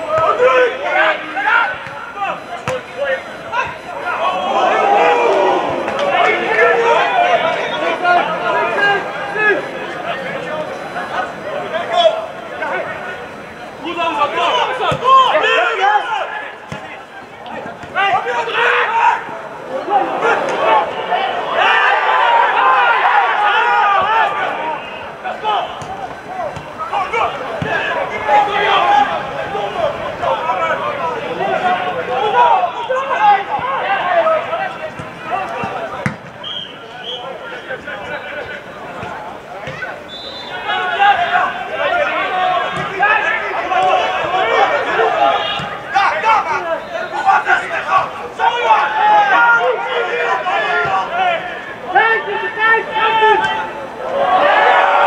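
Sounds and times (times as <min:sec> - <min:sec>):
people shouting and calling: 0:00.0 - 0:55.0
ball being kicked: 0:35.0 - 0:36.4.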